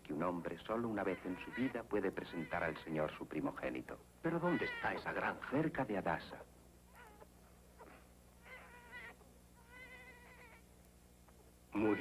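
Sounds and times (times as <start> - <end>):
low steady hum: 0.0 - 12.0
infant crying: 4.4 - 5.0, 7.0 - 10.6.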